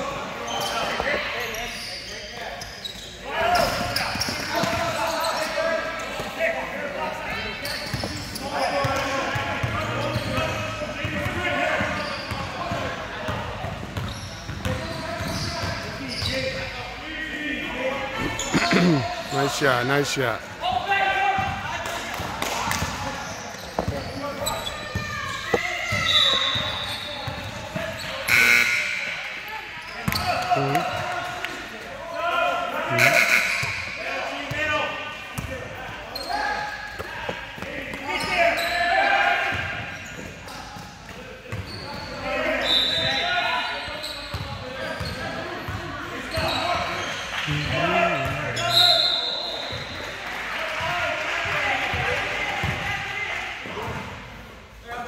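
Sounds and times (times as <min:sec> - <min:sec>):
voices echoing in a gym: 0:00.0 - 0:55.0.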